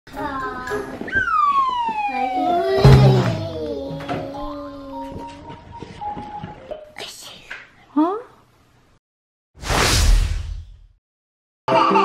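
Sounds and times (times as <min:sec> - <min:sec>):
descending slide whistle: 0:01.1 - 0:02.6.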